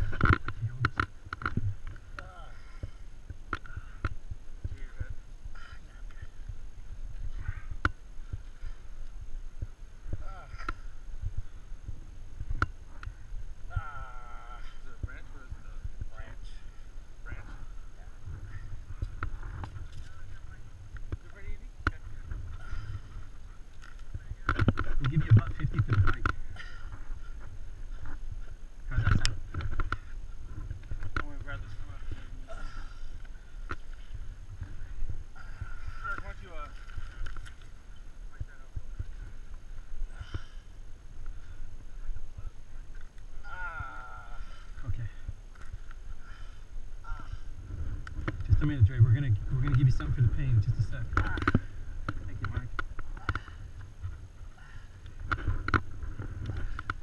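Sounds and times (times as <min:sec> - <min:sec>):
wind rumbling on microphone: 0:00.0 - 0:57.0.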